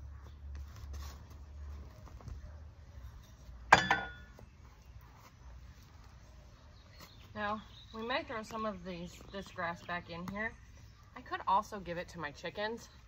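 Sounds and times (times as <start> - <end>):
metal garden tool clanking: 3.7 - 4.3
rustling of soil and grass: 4.4 - 13.0.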